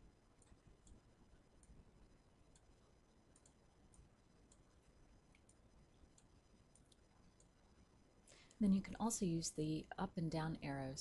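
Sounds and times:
computer mouse clicks: 0.4s - 1.8s, 2.5s - 7.6s.

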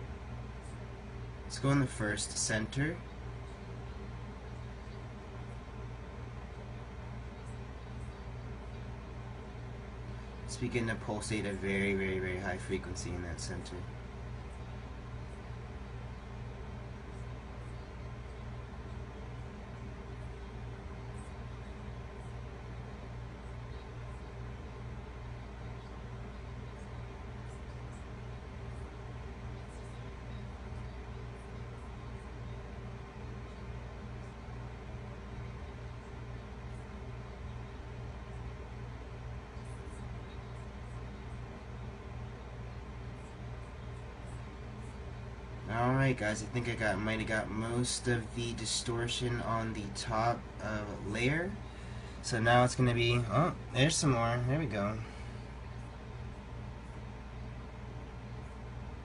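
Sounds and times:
room noise hum and hiss: 0.0s - 59.0s.

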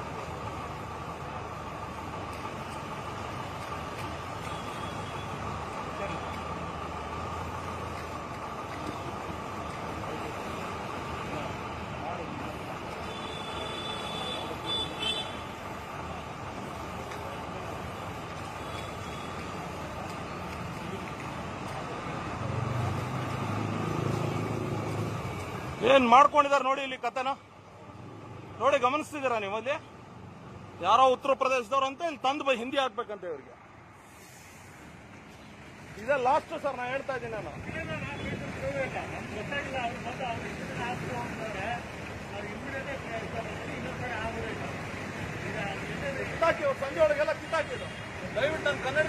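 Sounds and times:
road traffic rumble: 0.0s - 49.0s.

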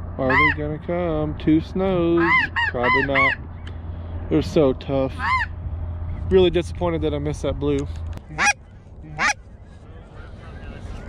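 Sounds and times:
goose call notes: 0.2s - 0.6s, 2.1s - 3.5s, 5.2s - 5.5s, 8.3s - 11.0s.

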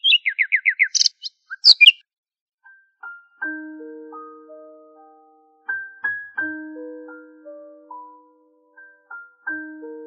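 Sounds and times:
bird singing: 0.0s - 2.0s.

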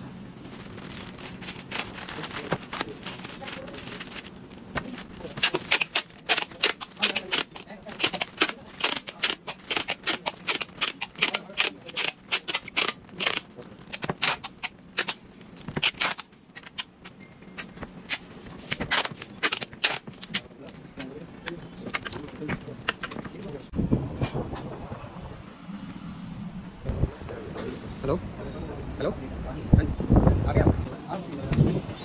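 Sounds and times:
low background hum and rumble: 0.0s - 32.0s
packing tape pulled off roll: 0.5s - 17.0s, 18.0s - 20.5s.

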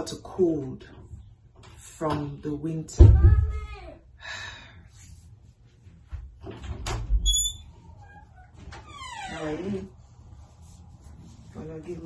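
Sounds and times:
door squeaking: 6.6s - 9.9s.

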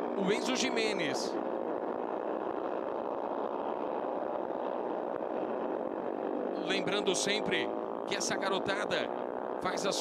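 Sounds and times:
race motorcycle engines buzzing: 0.0s - 10.0s.

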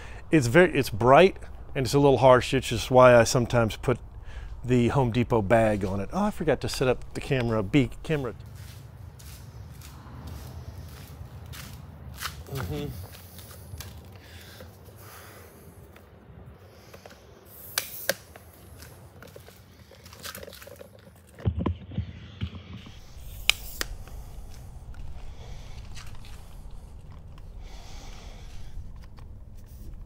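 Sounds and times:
steady low hum: 0.0s - 20.0s, 22.6s - 30.0s
camera handling rustles and clicks: 17.8s - 21.4s.

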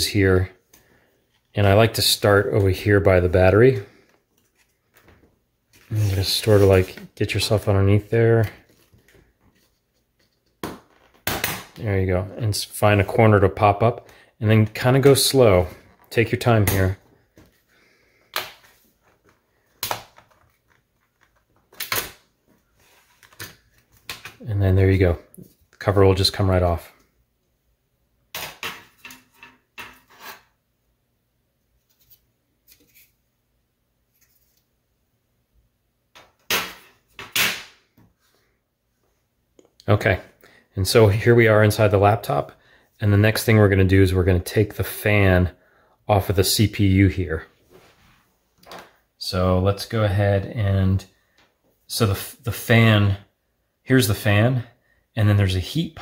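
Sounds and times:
plastic laptop parts clattering: 18.3s - 22.3s.

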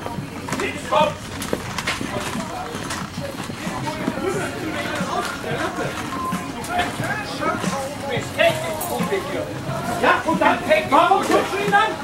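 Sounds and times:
background voices: 0.0s - 12.0s
shopping cart wheels rattling: 0.0s - 12.0s.

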